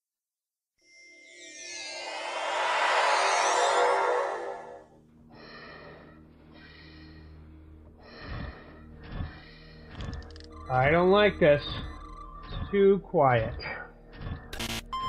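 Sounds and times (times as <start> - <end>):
shimmering sci-fi whoosh: 1.0 - 5.0
repeating tonal pulse: 1.1 - 5.0, 10.5 - 12.9.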